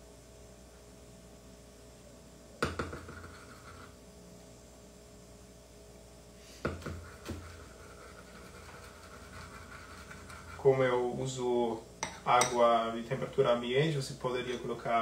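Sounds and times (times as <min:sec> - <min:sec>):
spoon scraping bowl: 0:02.9 - 0:04.0, 0:06.8 - 0:10.9
spoon clinking ceramic bowl: 0:12.0 - 0:12.6.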